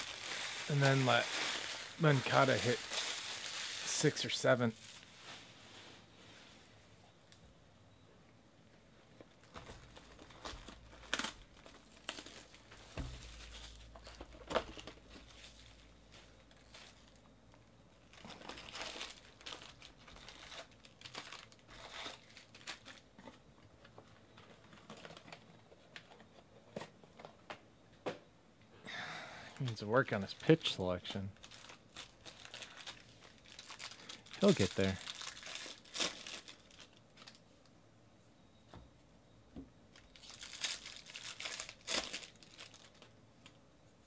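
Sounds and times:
crinkling of wrapped packs: 0:00.0 - 0:05.6, 0:09.2 - 0:27.3, 0:29.6 - 0:37.7, 0:39.9 - 0:43.6.

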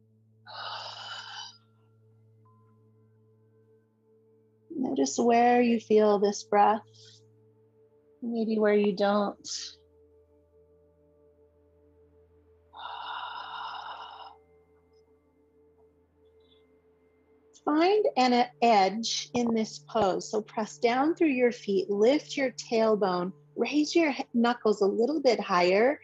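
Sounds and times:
faint background music: 0:00.5 - 0:10.0, 0:12.6 - 0:15.0, 0:15.7 - 0:26.0
person breathing: 0:12.8 - 0:14.4.

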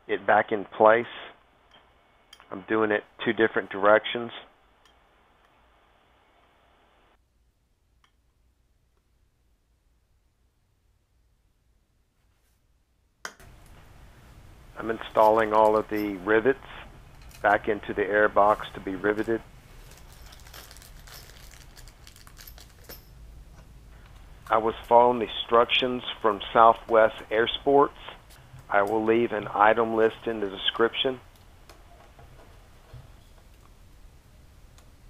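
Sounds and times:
faint hiss: 0:00.3 - 0:07.2.

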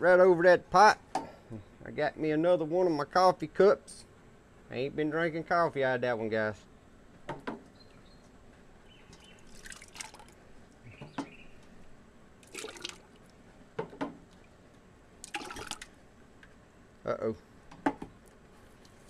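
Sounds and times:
liquid splashing when poured: 0:09.4 - 0:10.4, 0:12.4 - 0:13.4, 0:15.2 - 0:15.9.

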